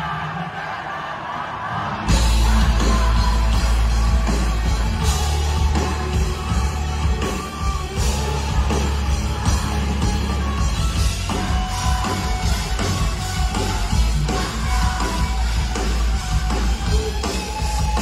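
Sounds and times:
crowd singing and yelling: 0.0s - 18.0s
live rock band: 1.8s - 18.0s.

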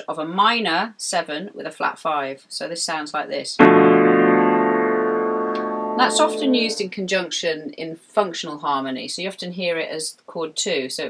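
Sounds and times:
piano chord: 3.6s - 6.8s.

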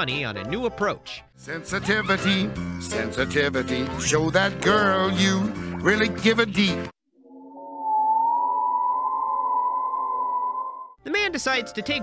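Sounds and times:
lower tones beneath: 7.1s - 11.0s.

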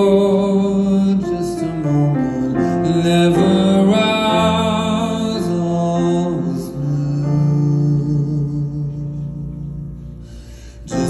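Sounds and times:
grand piano: 0.0s - 11.0s.

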